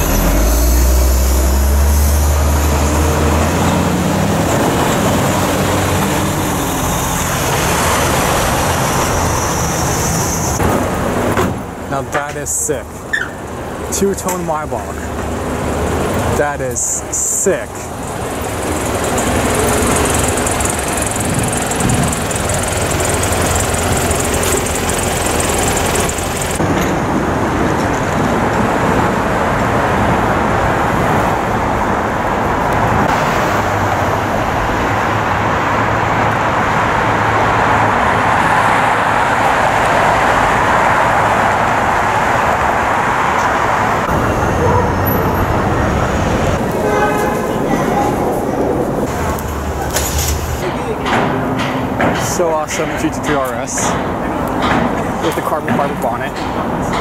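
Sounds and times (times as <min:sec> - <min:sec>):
low engine hum: 0:00.0 - 0:11.9, 0:17.9 - 0:50.9
passing cars: 0:00.0 - 0:57.0.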